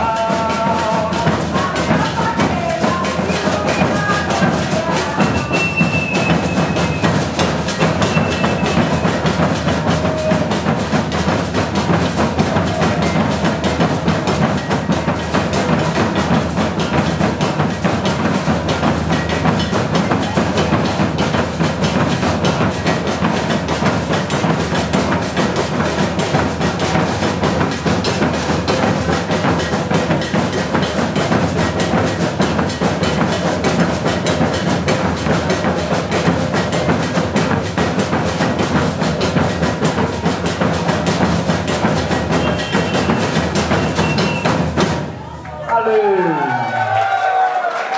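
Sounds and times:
wooden bass drums beaten: 0.0 - 45.3
snare drums: 0.0 - 47.9.

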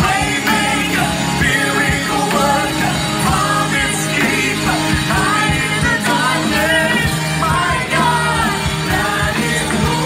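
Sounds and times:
live band playing: 0.0 - 10.0.

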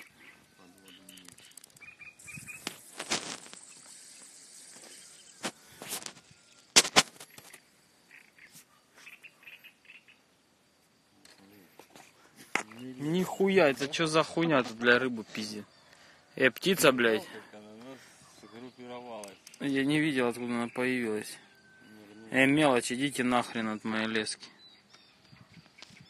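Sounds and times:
faint bird chirps: 0.0 - 2.9, 3.5 - 14.4, 15.1 - 26.0.

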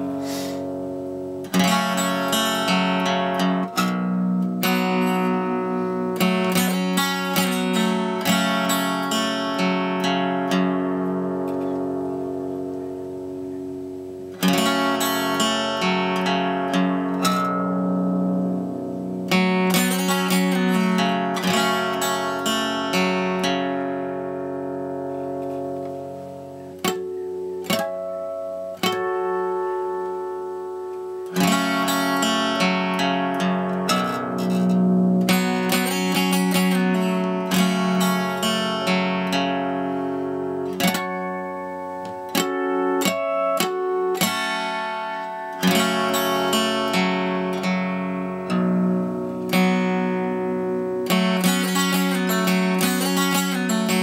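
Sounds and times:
solo acoustic guitar: 0.0 - 54.0.

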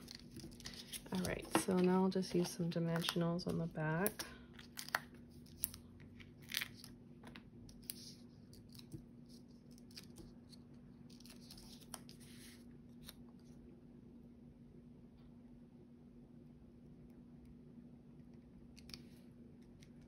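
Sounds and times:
paper crinkles and ticks: 0.0 - 5.8.

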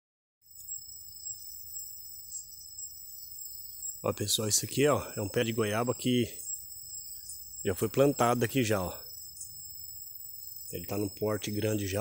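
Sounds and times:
insects trilling: 0.4 - 12.0.

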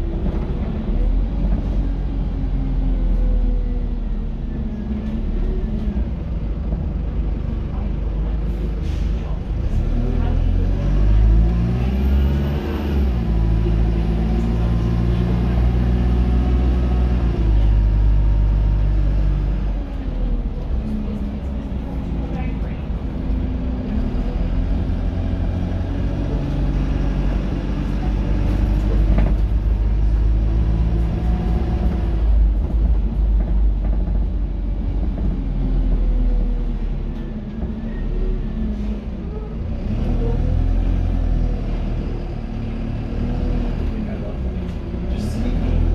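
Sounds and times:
bus engine rumbling: 0.0 - 45.9.

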